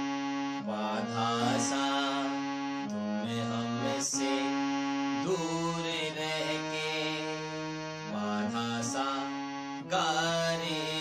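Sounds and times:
harmonium playing slow melody: 0.0 - 11.0.

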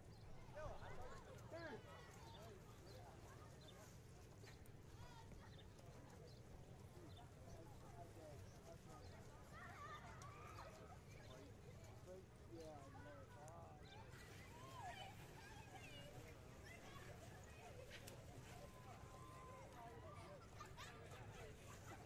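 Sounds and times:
distant people talking: 0.0 - 22.0.

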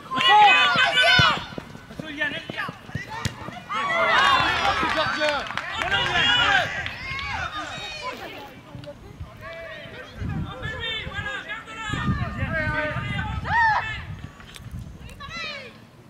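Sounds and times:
young players shouting: 0.0 - 8.2, 9.4 - 14.1.

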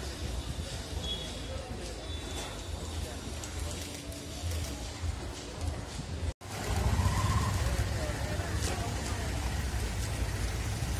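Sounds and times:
faint music: 0.0 - 10.9.

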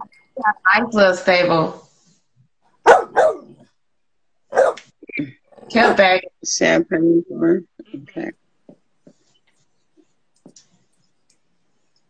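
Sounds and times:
dog barking: 2.8 - 3.6, 4.5 - 4.8.

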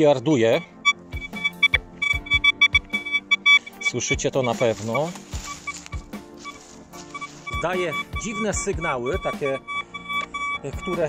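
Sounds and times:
metal detector high beeps: 0.5 - 11.0.

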